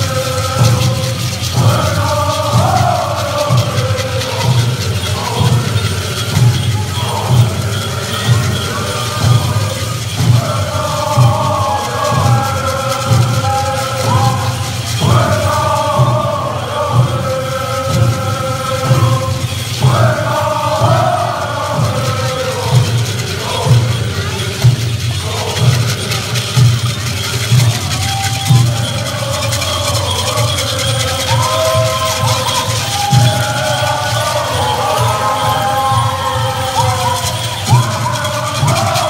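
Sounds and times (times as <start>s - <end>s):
chorus chanting in unison: 0.0s - 39.0s
steady drum beat: 0.0s - 39.0s.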